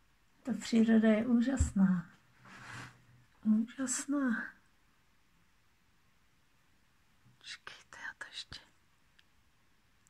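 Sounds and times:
woman whispering: 7.4 - 8.8.

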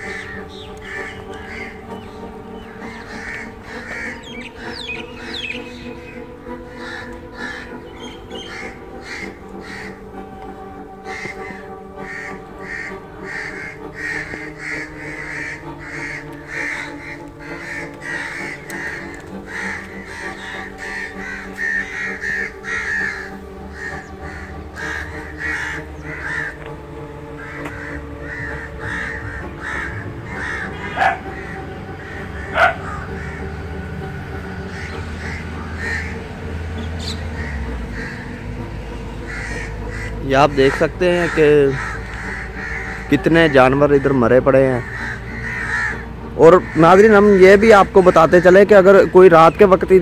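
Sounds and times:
background music: 0.0 - 50.0
crows cawing: 0.0 - 50.0.

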